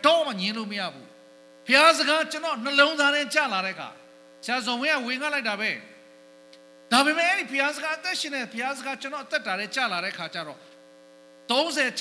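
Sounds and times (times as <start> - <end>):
amplified man speaking: 0.0 - 1.1, 1.7 - 5.9, 6.9 - 10.6, 11.5 - 12.0
electrical hum: 0.0 - 12.0.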